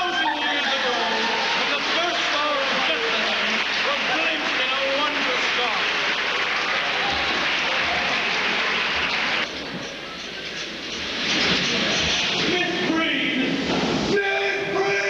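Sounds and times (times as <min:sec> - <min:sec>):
audience applause: 0:00.0 - 0:09.5.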